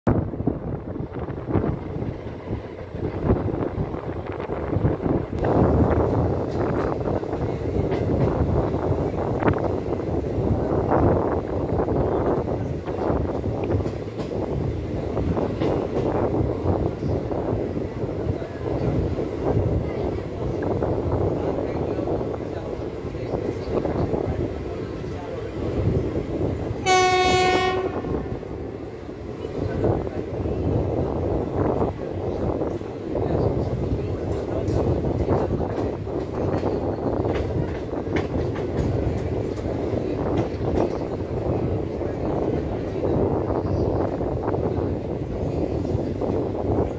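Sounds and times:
train wheels rumbling on track: 0.1 - 46.9
wind buffeting microphone: 0.1 - 46.9
locomotive horn: 26.8 - 28.4.

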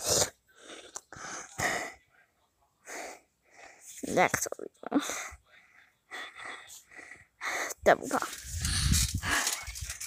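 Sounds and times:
low rumbling wind: 8.4 - 10.0.

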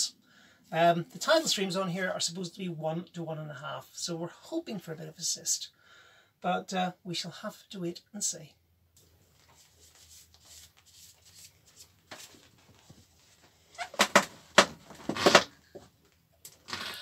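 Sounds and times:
cloth wiping shuffling: 9.0 - 13.8
loud rustles and knocks: 13.8 - 15.9.

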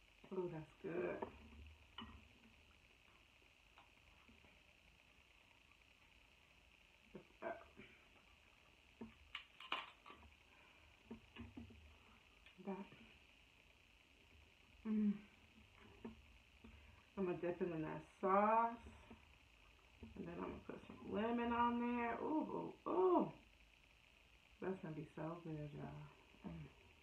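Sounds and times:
crab shell cracking: 9.0 - 10.4.

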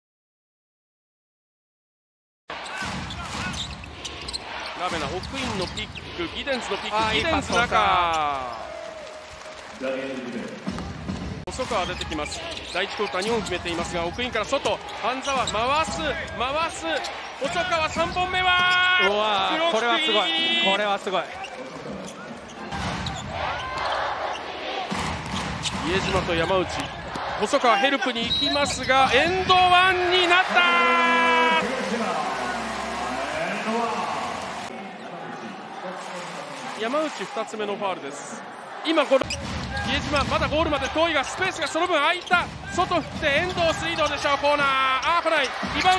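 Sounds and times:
arena crowd noise: 2.5 - 45.9.

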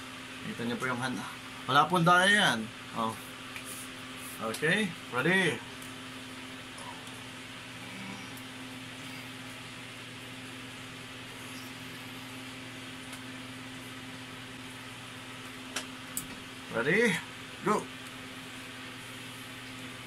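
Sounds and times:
room hiss: 0.0 - 20.0
low hum: 5.0 - 16.7.

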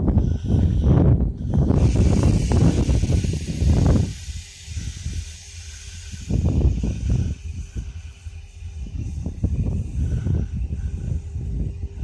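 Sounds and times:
freight train low rumble: 0.0 - 12.0
steady hiss: 1.5 - 12.0.

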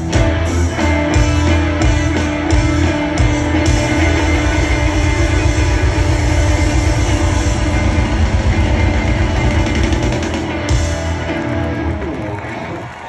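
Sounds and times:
loud live rock band: 0.0 - 13.0.

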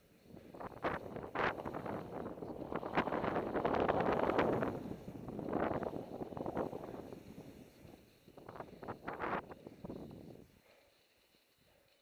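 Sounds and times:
skis swishing through powder snow: 0.0 - 11.4
wind on microphone: 0.3 - 10.5.

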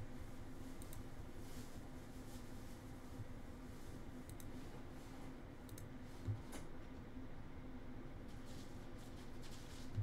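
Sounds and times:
faint computer mouse clicks: 0.8 - 1.0, 4.3 - 4.6, 5.7 - 5.9.

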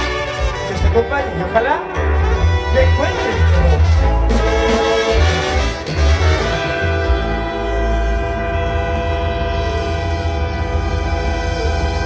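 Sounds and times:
brass band sustained chord: 0.0 - 12.0
low pulsing bass: 0.0 - 12.0.

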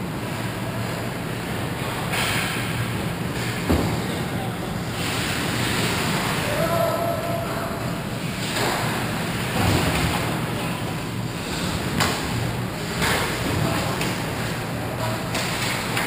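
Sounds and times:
player shouting: 6.4 - 7.9.

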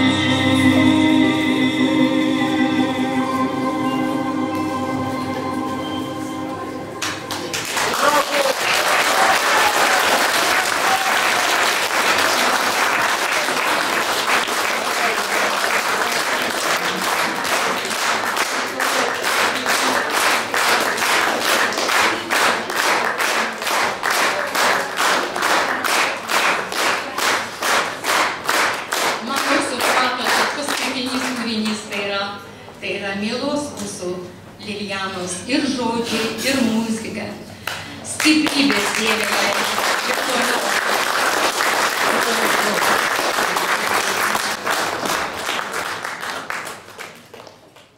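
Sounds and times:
audience applauding: 7.0 - 31.4, 37.7 - 47.9
rhythmic clapping in unison: 7.0 - 31.8, 37.6 - 47.9.

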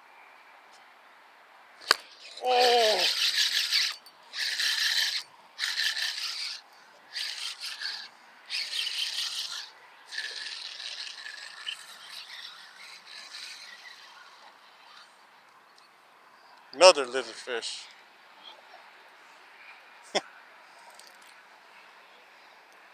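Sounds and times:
fishing reel gears whirring: 1.9 - 15.1.

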